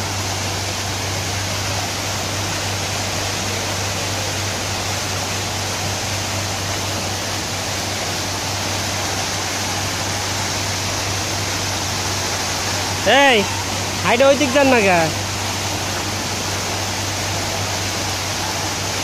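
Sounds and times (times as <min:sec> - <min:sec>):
fountain water splashing: 0:00.0 - 0:19.0.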